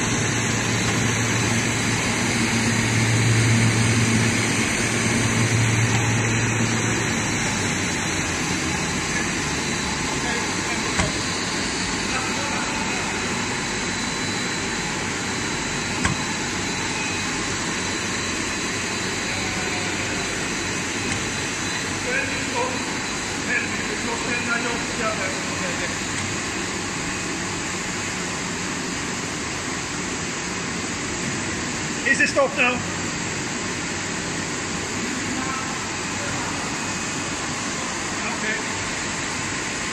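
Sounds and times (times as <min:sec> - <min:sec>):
thin high whine: 0:00.0 - 0:27.7
machinery hum and hiss: 0:00.0 - 0:39.9.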